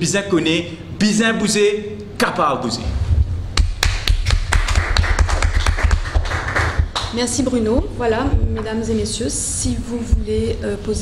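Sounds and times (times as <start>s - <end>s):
steady low rumble: 2.7s - 11.0s
people clapping: 3.6s - 7.5s.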